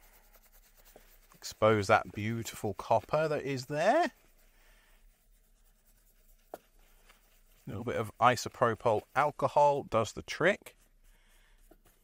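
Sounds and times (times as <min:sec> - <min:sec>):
faint rubbing of a wipe: 0:00.0 - 0:12.0.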